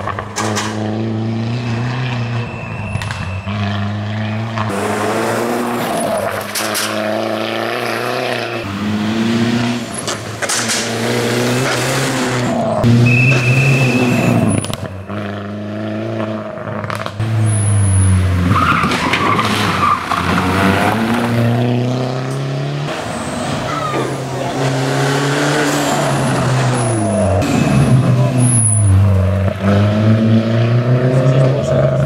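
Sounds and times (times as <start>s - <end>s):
rally car engine revving: 0.0s - 32.0s.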